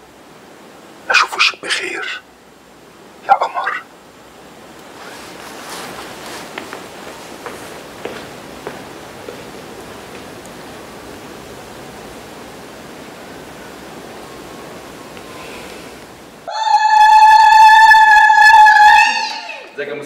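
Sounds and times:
low background hiss: 0.0s - 16.6s
woman ululating: 16.5s - 19.7s.

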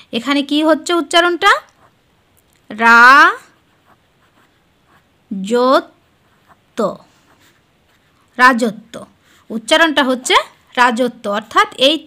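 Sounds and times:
pen scratching on paper: 1.6s - 2.0s, 3.3s - 5.2s, 5.8s - 9.8s.

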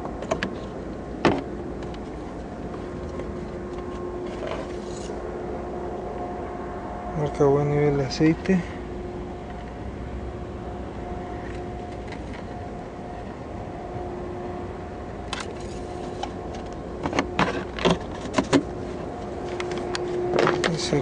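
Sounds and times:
steady hum with drone: 0.0s - 21.0s.

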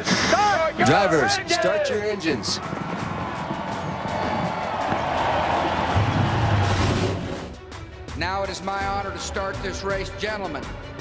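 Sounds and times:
background music: 0.0s - 11.0s
crowd cheering: 0.3s - 7.5s.

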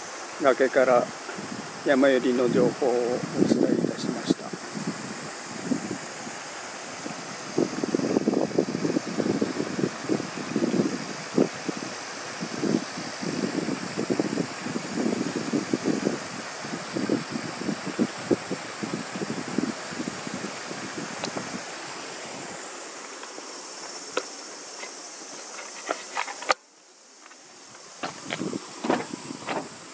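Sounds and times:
high-pitched insect chorus: 0.0s - 29.9s
wind buffeting microphone: 1.0s - 22.5s, 28.0s - 29.9s.

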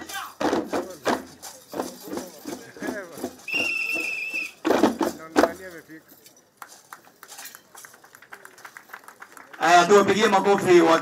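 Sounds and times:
faint rattle clicks and clinks: 5.2s - 9.1s.

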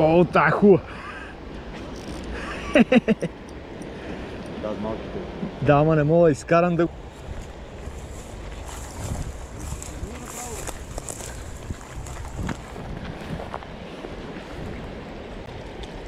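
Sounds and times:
river rushing: 0.0s - 16.0s
wind buffeting microphone: 7.0s - 16.0s.

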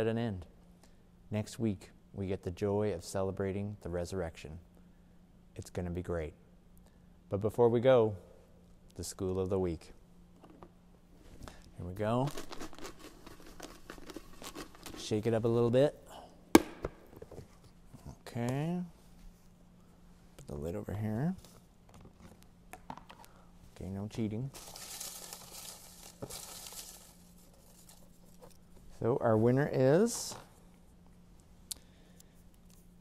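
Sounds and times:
paper slips rattling in plastic box: 12.2s - 15.1s, 24.5s - 28.2s.

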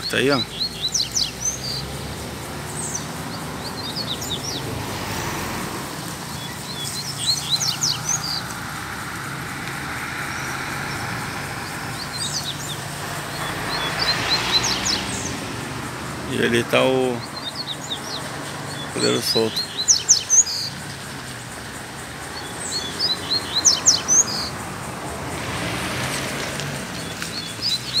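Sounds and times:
broad rushing noise: 0.0s - 28.0s.

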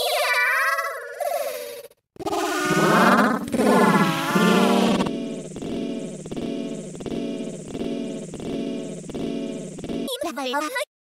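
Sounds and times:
distorted warbling cartoon tones: 2.2s - 10.3s.

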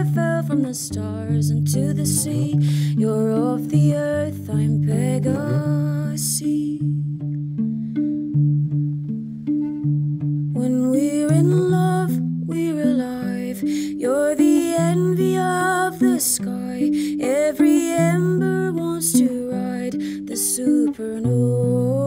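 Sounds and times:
woman singing slow melody: 0.0s - 7.3s, 10.6s - 22.0s
plucked guitar: 0.0s - 22.0s.

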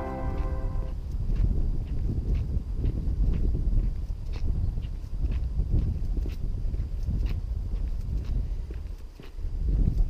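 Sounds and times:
footsteps on gritty tarmac: 0.0s - 10.0s.

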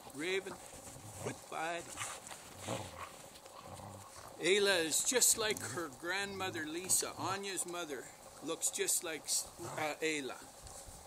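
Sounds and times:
dogs shuffling in snow: 0.0s - 11.0s.

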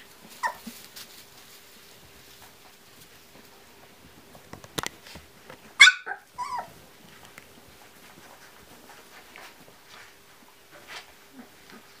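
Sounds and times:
puppy squealing: 0.4s - 0.6s, 5.8s - 6.7s.

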